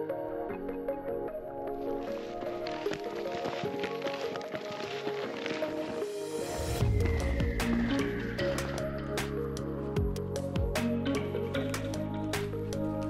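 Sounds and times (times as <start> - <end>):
instrumental background music: 0.0 - 13.0.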